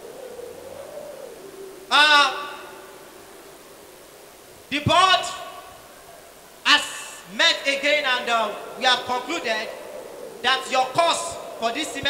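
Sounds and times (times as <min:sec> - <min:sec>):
man exclaiming into a microphone: 0:01.9 - 0:02.6, 0:04.7 - 0:05.6, 0:06.7 - 0:09.7, 0:10.4 - 0:12.0
public address system hum and hiss: 0:04.7 - 0:05.7, 0:06.6 - 0:09.8, 0:10.4 - 0:12.0.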